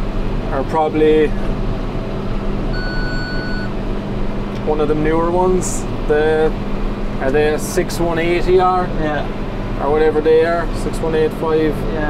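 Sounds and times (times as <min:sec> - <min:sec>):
machinery humming: 0:00.0 - 0:12.0
electronic beep: 0:02.8 - 0:03.7.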